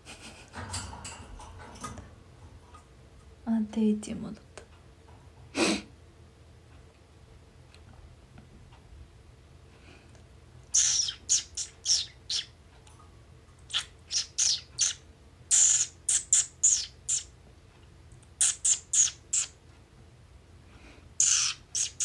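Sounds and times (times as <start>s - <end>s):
pet bird chirping: 10.7s - 12.6s, 13.7s - 17.3s, 18.4s - 19.6s, 21.2s - 22.0s.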